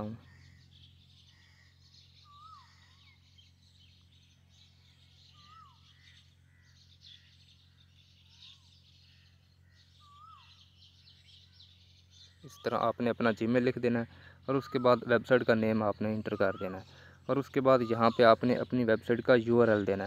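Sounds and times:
faint bird calls: 0.0s - 20.0s
low steady hum: 0.0s - 20.0s
whistled call rising and falling: 2.2s - 3.2s.

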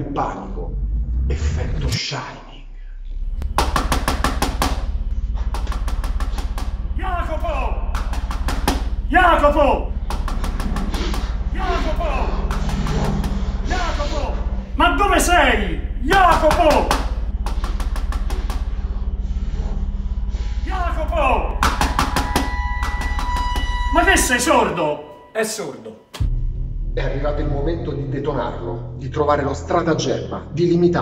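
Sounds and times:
steady low hum: 2.8s - 24.4s
fist knocking on door: 3.4s - 7.0s, 7.9s - 13.4s, 16.0s - 18.7s, 21.6s - 23.8s.

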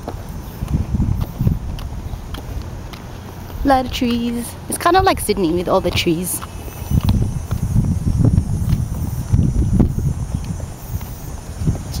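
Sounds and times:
light footsteps on pavement: 0.0s - 12.0s
wind buffeting microphone: 0.0s - 12.0s.

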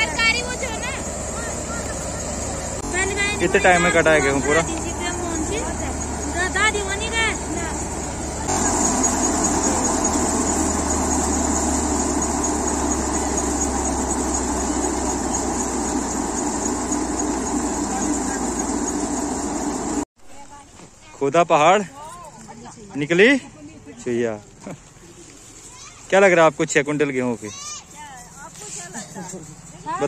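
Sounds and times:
thresher mechanical din: 0.0s - 20.0s
tractor engine hum: 0.0s - 20.1s, 26.9s - 30.0s.

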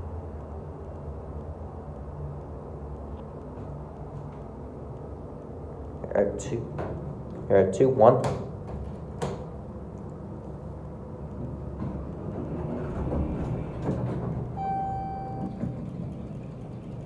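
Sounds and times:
elevator rumbling: 2.5s - 17.0s
elevator chime: 14.5s - 16.2s
elevator button click: 14.6s - 15.8s.

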